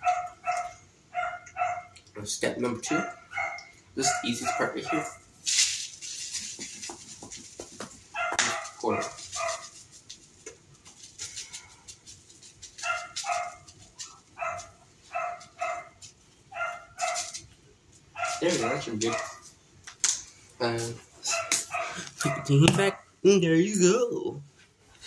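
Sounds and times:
small dog yapping: 0:00.0 - 0:02.0, 0:02.9 - 0:05.2, 0:08.1 - 0:09.8, 0:12.8 - 0:17.4, 0:18.2 - 0:19.4, 0:21.2 - 0:23.0.

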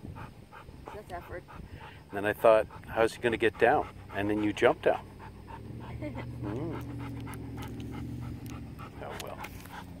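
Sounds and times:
dog panting: 0:00.0 - 0:10.0.

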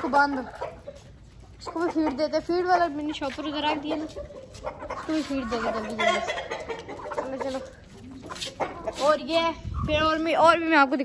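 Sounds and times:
chickens clucking: 0:00.0 - 0:10.4.

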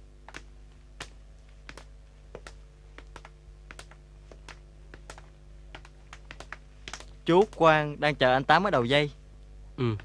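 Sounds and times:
steady low hum: 0:00.0 - 0:10.0
faint irregular clicks: 0:00.2 - 0:07.8.

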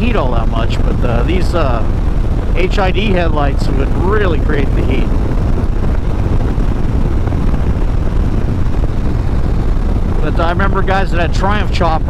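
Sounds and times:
motorcycle engine rumbling: 0:00.0 - 0:12.0
wind rush on microphone: 0:00.0 - 0:12.0.

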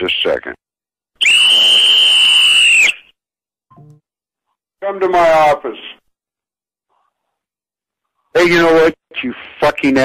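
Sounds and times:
shrill high whistle: 0:01.2 - 0:03.2.

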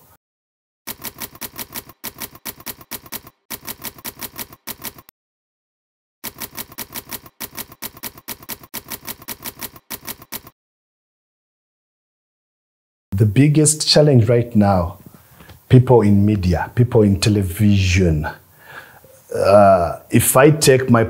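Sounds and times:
typewriter keys clacking: 0:00.9 - 0:05.1, 0:06.3 - 0:10.5.

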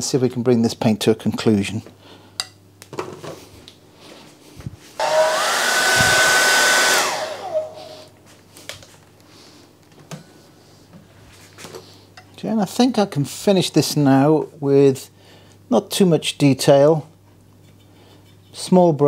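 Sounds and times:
hair dryer blowing: 0:05.0 - 0:08.1.

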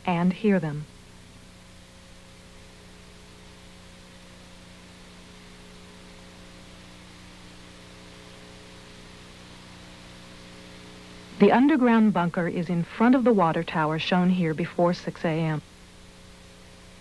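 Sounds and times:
faint steady hiss: 0:00.0 - 0:17.0
faint steady tones: 0:00.0 - 0:17.0
low electrical hum: 0:00.0 - 0:17.0.

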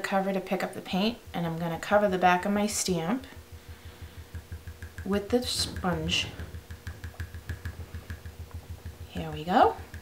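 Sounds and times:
sponge dabbing soft taps: 0:01.8 - 0:10.0.

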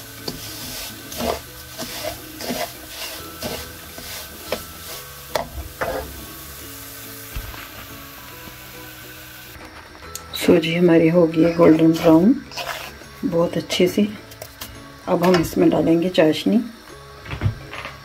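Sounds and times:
spatula scraping pan: 0:00.0 - 0:06.3, 0:11.6 - 0:13.2
light sizzle: 0:00.0 - 0:18.0.

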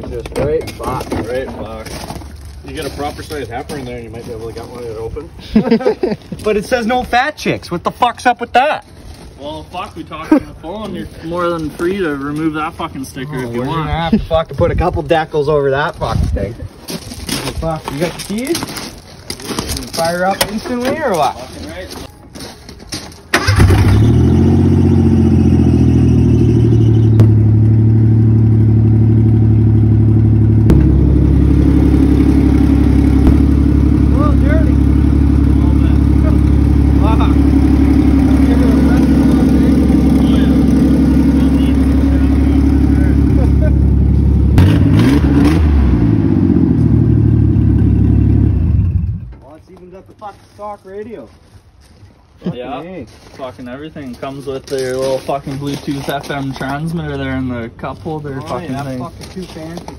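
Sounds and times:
loud engine without exhaust: 0:23.4 - 0:49.4.

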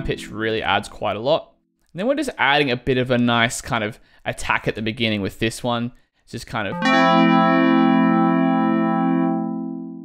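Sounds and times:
sustained fm synth tone: 0:00.0 - 0:00.5.

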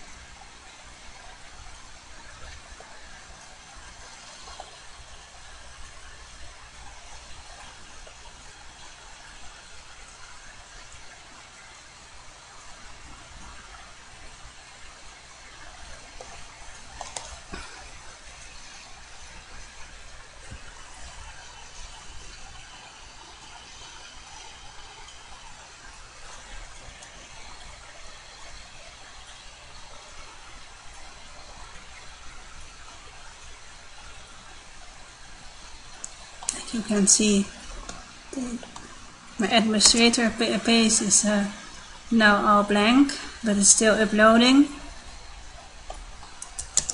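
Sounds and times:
microphone hiss: 0:00.0 - 0:46.9.

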